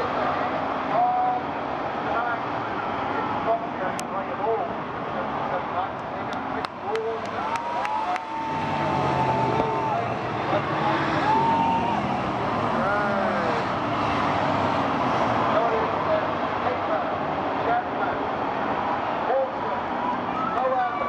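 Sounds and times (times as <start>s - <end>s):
crowd voices: 0.0s - 21.0s
stock car engines racing by: 0.0s - 21.0s.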